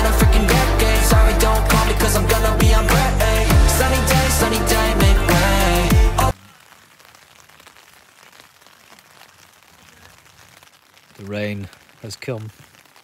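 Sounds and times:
pop music: 0.0 - 6.4
rain on tent fabric: 5.4 - 13.0.

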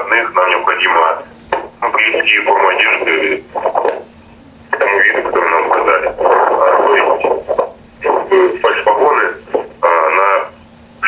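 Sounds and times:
person speaking over telephone: 0.0 - 4.0, 4.7 - 10.6.

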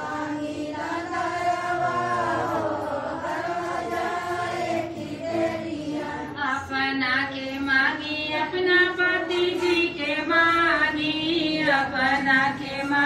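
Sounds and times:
women singing devotional song: 0.0 - 13.0.

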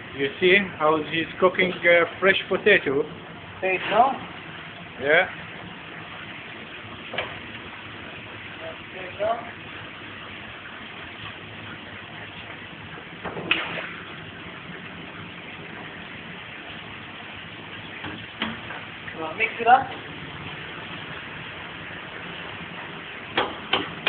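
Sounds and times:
fryer hissing: 0.0 - 24.0
sharp clatter at fryer: 7.0 - 7.5, 13.2 - 14.2, 17.8 - 19.2, 22.5 - 24.0.

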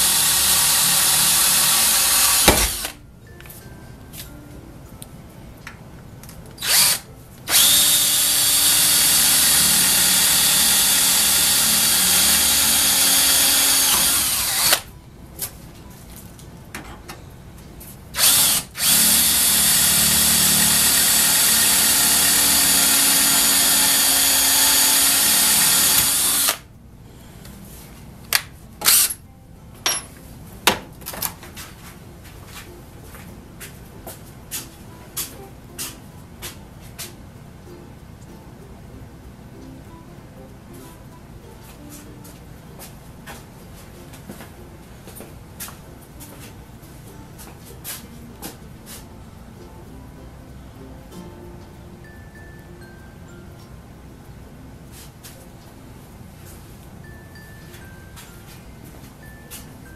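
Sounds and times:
cordless drill boring sheet metal: 0.0 - 3.0, 6.6 - 14.9, 18.2 - 26.7, 28.8 - 29.2.

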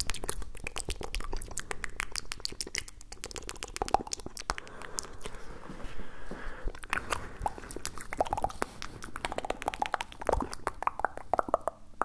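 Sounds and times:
wet mouth and tongue clicks: 0.0 - 5.4, 6.7 - 12.0.

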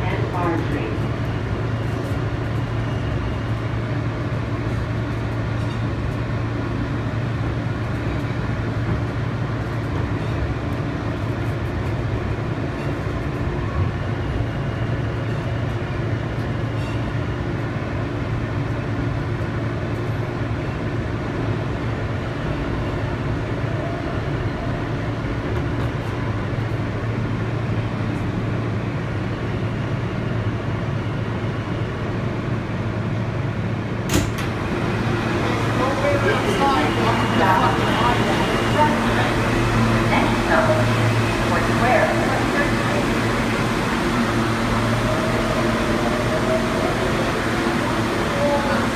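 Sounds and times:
subway car running hum: 0.0 - 48.9
train doors clunk: 34.0 - 35.8.

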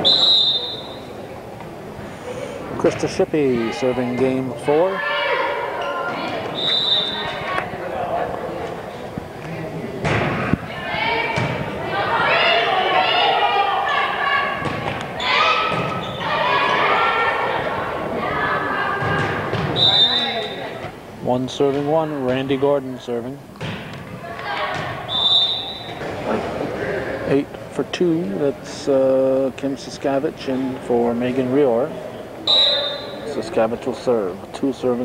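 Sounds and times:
referee's whistle blast: 0.0 - 1.1, 6.6 - 7.3, 19.8 - 20.7, 25.1 - 26.0, 32.4 - 33.3
crowd shouting and cheering: 10.2 - 20.9
volleyball hits thudding: 11.3 - 11.7.

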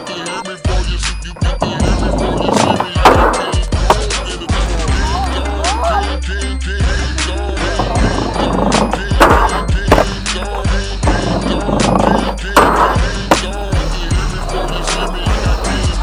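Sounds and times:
music with steady beat: 0.0 - 16.0
skateboard wheel rumble: 1.4 - 4.3, 7.8 - 13.5
skateboard knocks: 1.5 - 4.2, 7.8 - 13.5
skateboard sliding on wooden ledge: 7.8 - 13.5.

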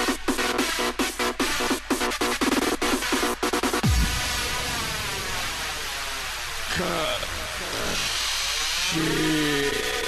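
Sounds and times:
distorted synth sweeping in pitch: 3.8 - 10.0
processed vocal-like sound: 6.7 - 10.0.

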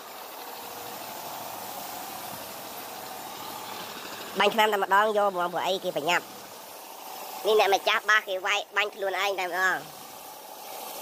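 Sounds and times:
paint spray gun hissing: 0.0 - 11.0.

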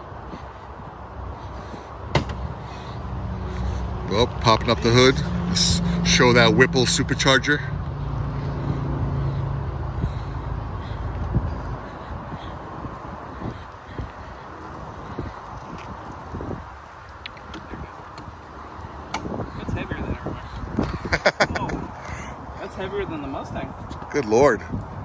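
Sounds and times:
low engine hum: 0.0 - 22.5
wind on microphone: 9.8 - 22.6, 23.4 - 25.0.

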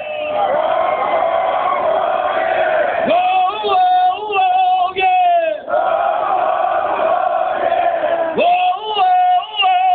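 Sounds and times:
crowd yelling and cheering: 0.0 - 9.9.

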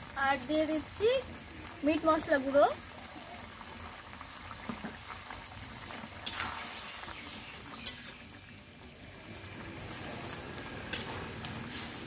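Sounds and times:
curry bubbling in a pan: 0.0 - 12.0.

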